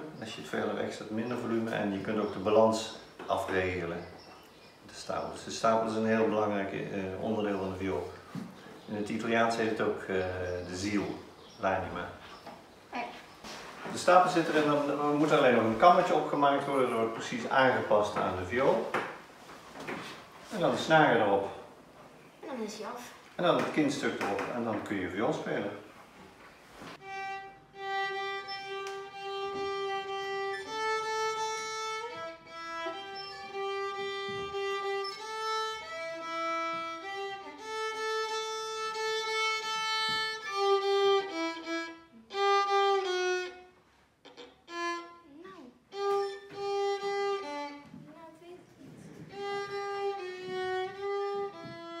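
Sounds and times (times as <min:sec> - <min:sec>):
solo violin melody: 0:27.0 - 0:48.1, 0:49.1 - 0:52.0.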